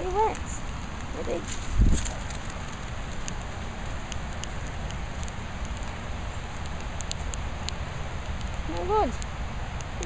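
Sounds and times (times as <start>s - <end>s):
light crackles and ticks: 0.0s - 10.0s.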